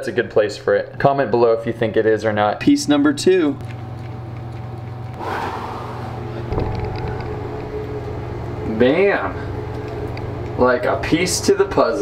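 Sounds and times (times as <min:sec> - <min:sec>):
cooling unit and fan humming: 0:00.0 - 0:12.0.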